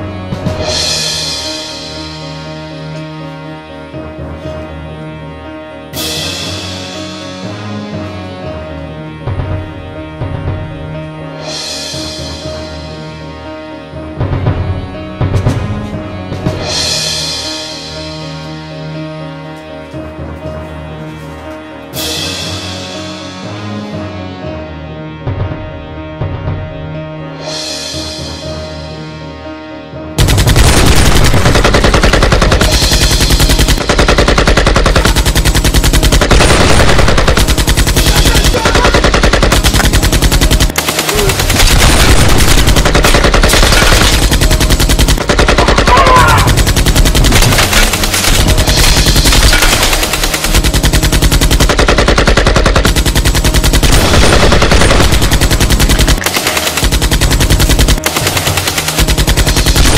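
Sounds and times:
automatic rifle fire: 30.2s - 59.9s.

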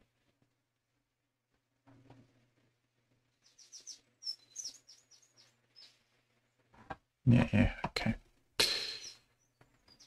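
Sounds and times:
bird chirping: 3.3s - 6.5s, 8.7s - 10.0s.

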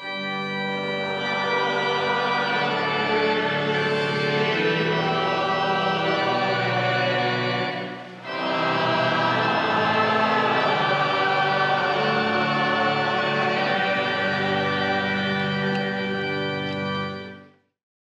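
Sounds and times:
slow sacred music chords: 0.0s - 17.6s.

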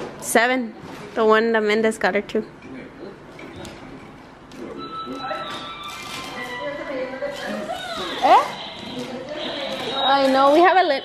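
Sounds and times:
dialogue: 0.2s - 11.0s.

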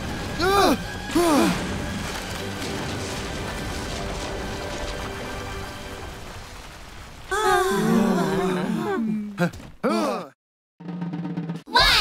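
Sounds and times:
wooden house collapsing: 0.0s - 5.3s
background music: 0.0s - 6.6s.

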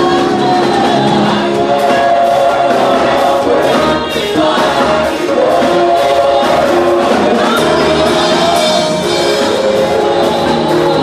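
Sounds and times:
group singing gospel song: 0.0s - 11.0s.

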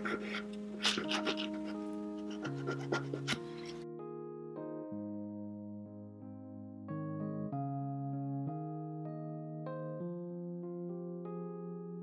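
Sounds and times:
nail file scraping nail: 0.0s - 3.8s
soft keyboard background music: 0.0s - 12.0s.

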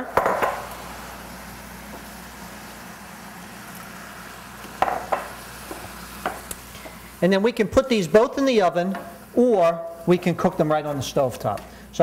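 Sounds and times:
stock sizzling in hot pans: 0.0s - 12.0s.

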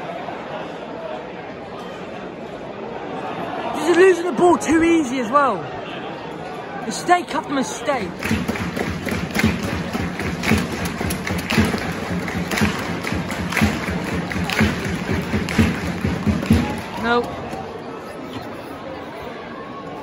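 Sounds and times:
crowd murmur: 0.0s - 20.0s.

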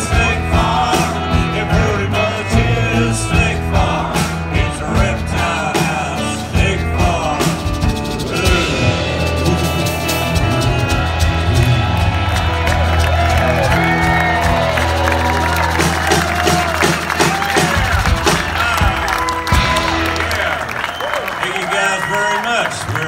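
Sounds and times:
live rock band: 0.0s - 22.1s
audience cheering and clapping: 9.4s - 23.0s.

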